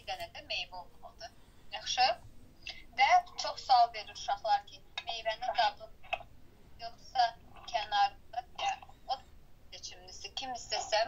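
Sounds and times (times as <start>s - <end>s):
speech through small speaker: 0.0s - 6.2s, 6.8s - 11.0s.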